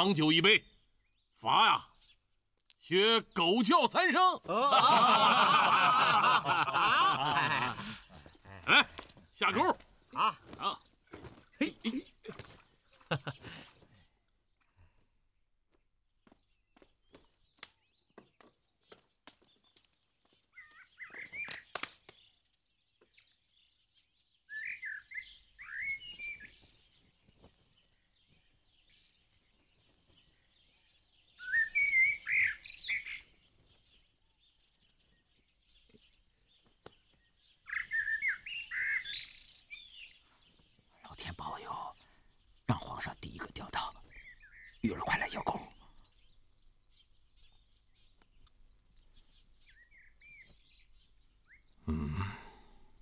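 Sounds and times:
songbird chirping: 0:00.0 - 0:53.0.

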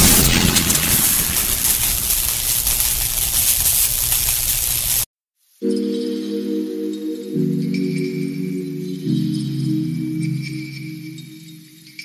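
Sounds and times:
soft sustained musical tones: 0:05.6 - 0:12.0.

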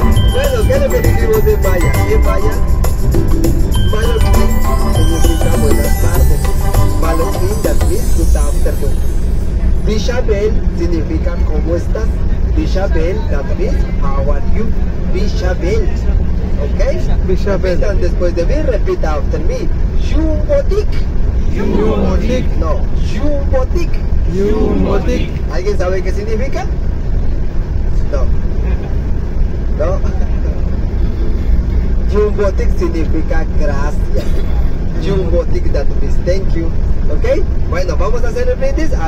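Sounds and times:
bus engine rumble: 0:00.0 - 0:39.0
road noise: 0:00.0 - 0:39.0
man talking over loudspeakers: 0:00.1 - 0:02.6, 0:03.8 - 0:09.0, 0:09.8 - 0:26.8, 0:32.1 - 0:39.0.

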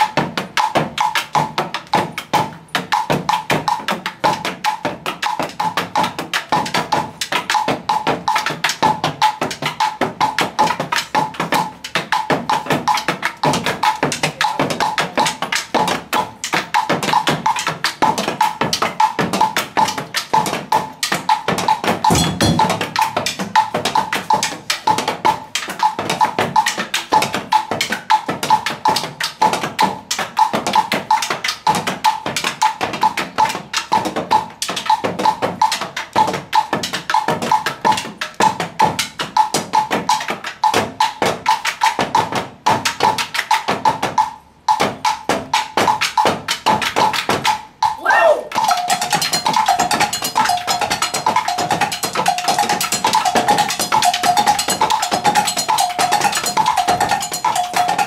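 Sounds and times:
drums playing: 0:00.0 - 0:58.0.

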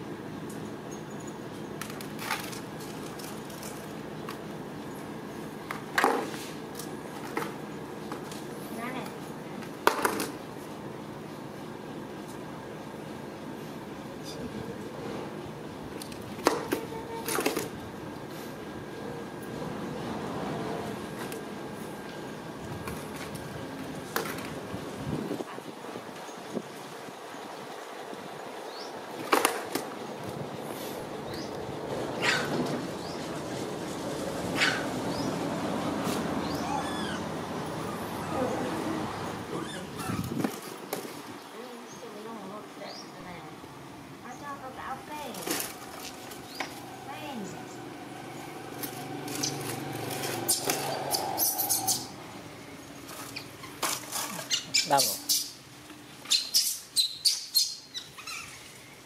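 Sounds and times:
baby monkey squeaks: 0:36.5 - 0:37.2, 0:39.5 - 0:40.4, 0:50.5 - 0:52.1, 0:54.5 - 0:55.6, 0:56.3 - 0:58.6
person calling: 0:54.3 - 0:55.5.

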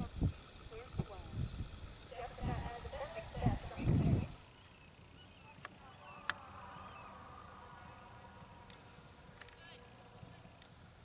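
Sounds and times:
faint voices: 0:05.0 - 0:10.7.

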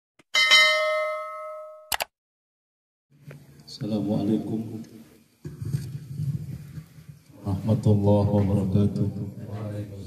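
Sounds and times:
bell-like ding: 0:00.3 - 0:01.9.

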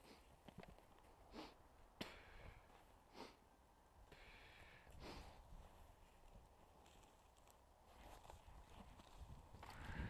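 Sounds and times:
rustling of litter and dry grass: 0:05.0 - 0:10.0.

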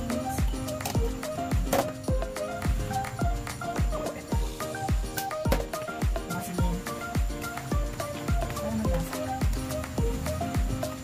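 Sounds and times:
electronic music with kick drum: 0:00.0 - 0:11.0.

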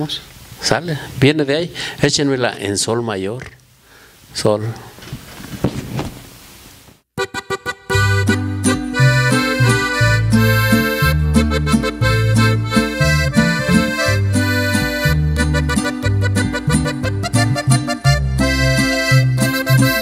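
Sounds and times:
accordion melody: 0:07.2 - 0:20.0
bass guitar line: 0:07.2 - 0:20.0
strummed guitar chords: 0:07.2 - 0:20.0.

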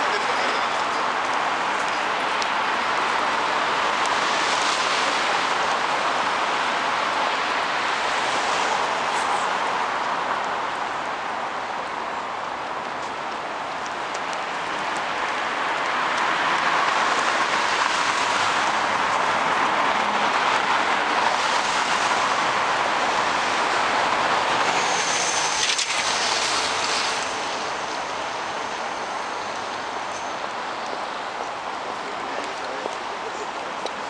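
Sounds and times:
road traffic: 0:00.0 - 0:34.0.

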